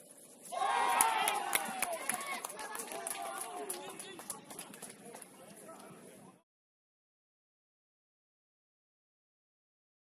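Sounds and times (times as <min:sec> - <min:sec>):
people shouting outdoors: 0:00.5 - 0:03.8
sharp claps: 0:00.9 - 0:05.9.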